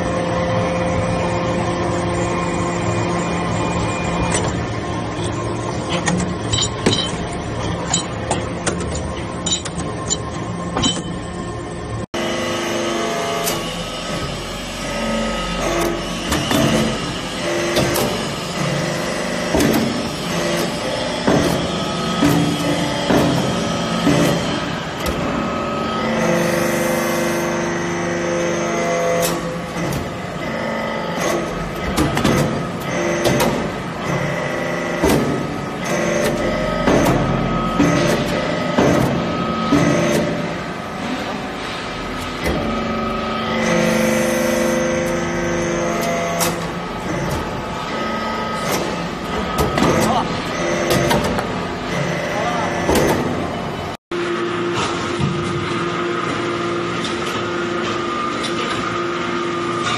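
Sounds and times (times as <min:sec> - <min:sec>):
hydraulic power unit hum: 0:00.0 - 0:59.9
metallic clicks and clanks: 0:05.9 - 0:11.2.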